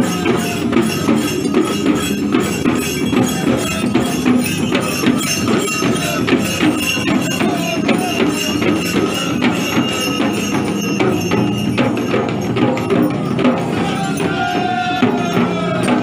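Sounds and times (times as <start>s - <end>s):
frame drums beaten in rhythm: 0.0s - 16.0s
metal bells jingling: 0.0s - 16.0s.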